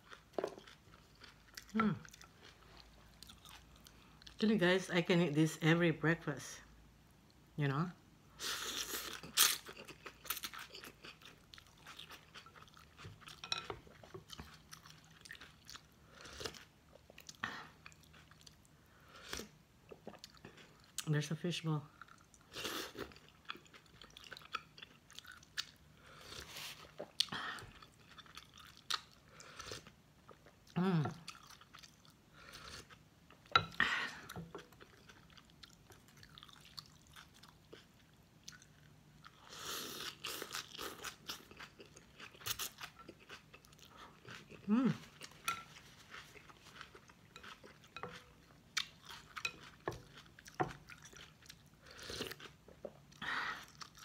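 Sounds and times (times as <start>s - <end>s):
person chewing: 0.0s - 4.4s, 8.6s - 21.1s, 22.0s - 54.0s
person humming: 44.7s - 45.1s.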